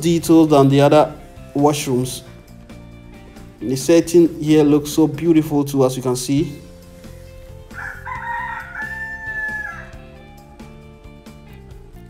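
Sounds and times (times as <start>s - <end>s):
background music: 0.0s - 12.0s
rooster crowing: 7.7s - 11.1s.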